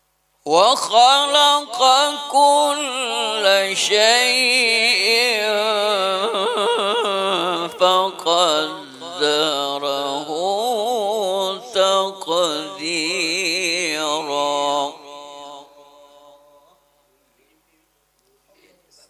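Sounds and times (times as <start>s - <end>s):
man chanting melodic recitation: 0.5s - 16.6s.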